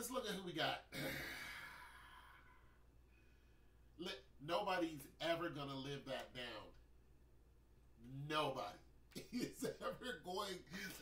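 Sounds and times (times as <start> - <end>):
man sighing: 0.9 - 2.9.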